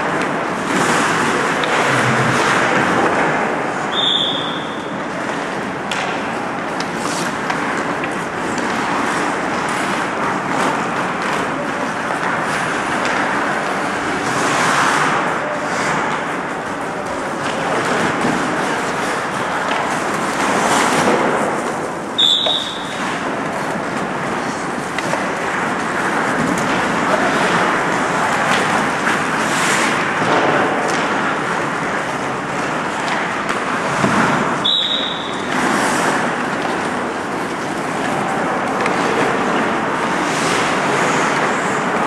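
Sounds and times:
hockey sticks and puck clacking: 0.0s - 42.0s
skate blades scraping ice: 0.0s - 42.0s
short high whistle blast: 3.9s - 4.8s, 22.2s - 23.0s, 34.6s - 35.4s.

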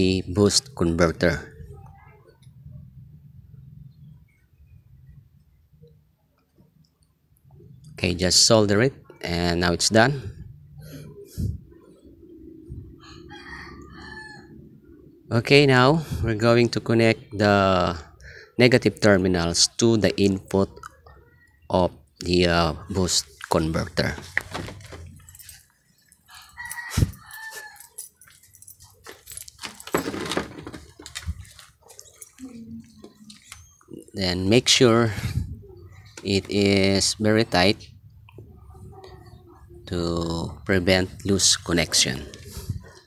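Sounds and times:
faint rooster crow: 13.0s - 14.8s, 26.3s - 28.1s
clicks and rustles of hands with wires: 23.3s - 34.0s.

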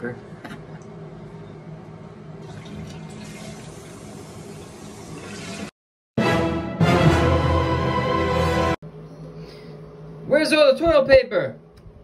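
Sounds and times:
water running: 2.4s - 5.8s.

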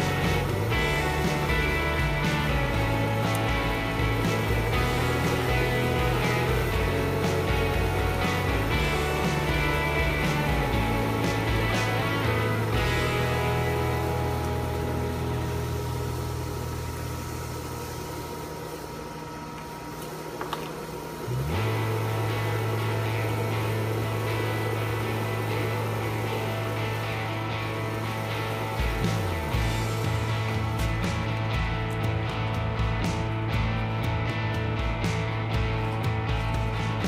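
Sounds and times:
steady low bass note: 0.0s - 18.6s, 21.2s - 37.0s
held chords: 0.0s - 37.0s.

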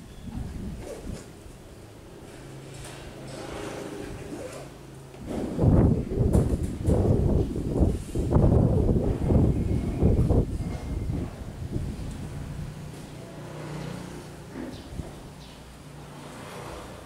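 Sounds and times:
wind buffeting microphone: 5.2s - 13.0s.

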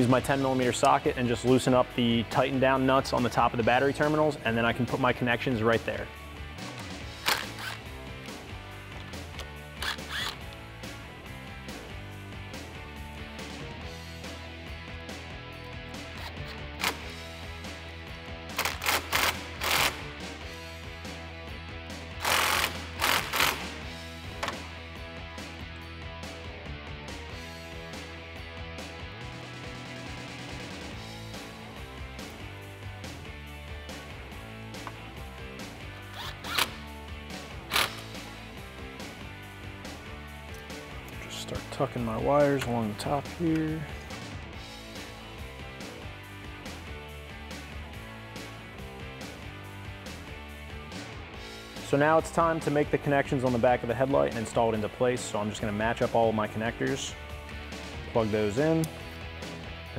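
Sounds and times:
background music: 0.0s - 59.9s
cordless drill whirring: 9.8s - 10.5s, 22.2s - 23.7s.

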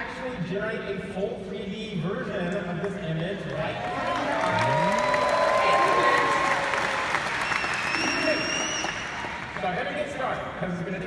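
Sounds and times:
audience applauding: 3.7s - 10.4s.

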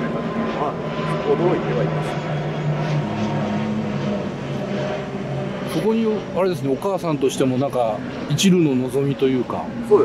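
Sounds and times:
low engine drone: 0.0s - 10.0s.

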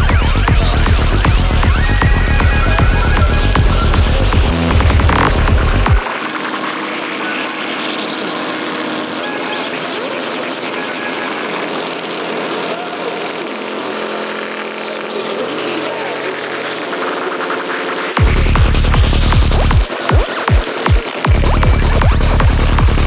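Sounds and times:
kick drum and bassline: 0.0s - 8.5s, 16.4s - 23.0s
noisy electronic effects: 0.0s - 23.0s.

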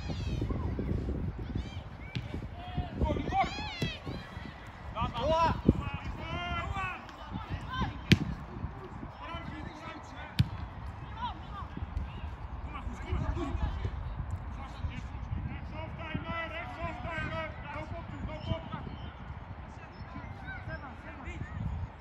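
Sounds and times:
players shouting: 1.7s - 8.5s
football kick thuds: 2.0s - 2.7s, 3.6s - 4.3s, 8.0s - 8.5s, 10.4s - 10.7s.

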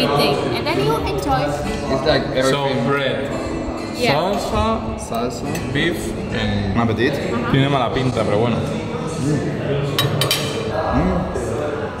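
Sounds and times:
murmur of voices: 0.0s - 12.0s
cutlery clinking on a plate: 9.8s - 10.8s.

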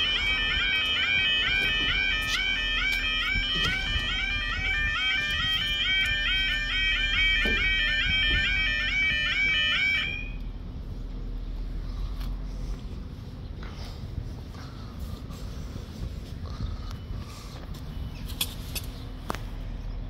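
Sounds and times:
level crossing warbling alarm: 0.0s - 10.4s.

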